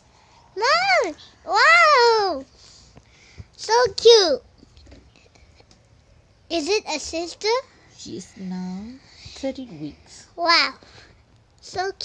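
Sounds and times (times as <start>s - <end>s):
child speaking: 0.6s - 2.5s, 3.6s - 4.5s, 6.5s - 7.7s, 10.2s - 10.8s, 11.6s - 12.0s.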